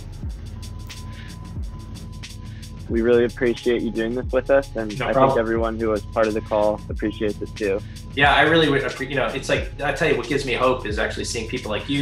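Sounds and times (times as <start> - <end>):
sustained low bass: 0.0 - 12.0.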